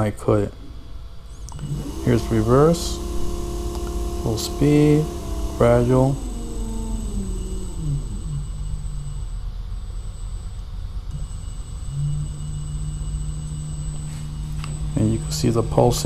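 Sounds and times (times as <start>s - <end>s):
steady low hum: 0.0s - 16.0s
electric motor whine: 1.3s - 16.0s.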